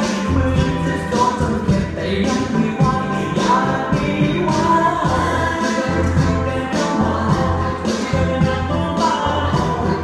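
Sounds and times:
pop song with sung vocals: 0.0 - 10.0.

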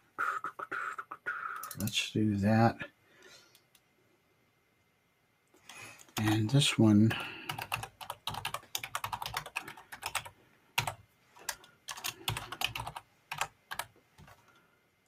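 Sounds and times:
typing on computer keyboard: 1.6 - 1.9, 7.5 - 14.5.

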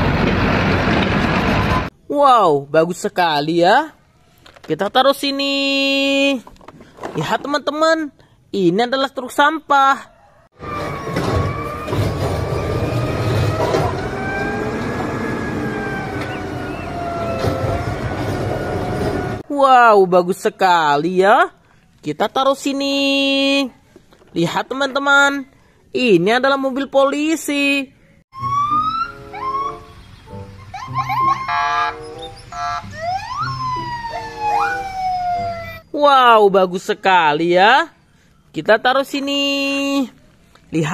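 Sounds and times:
diesel engine rumbling: 0.0 - 2.0, 10.6 - 19.4
police siren whooping: 10.5 - 19.4, 28.3 - 29.9, 30.7 - 35.9
horn-like siren blasts: 10.6 - 19.4, 28.3 - 29.9, 31.3 - 35.8
hydraulic whine: 10.6 - 19.4.

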